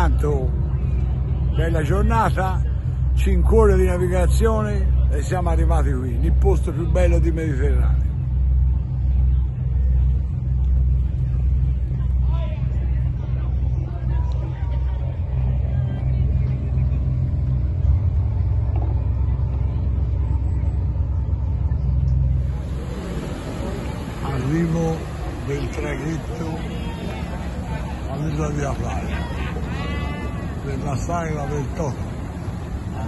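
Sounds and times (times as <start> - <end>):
deep pulsing rumble: 0.0 - 33.0
voices: 0.0 - 33.0
ferry propellers churning water: 22.2 - 33.0.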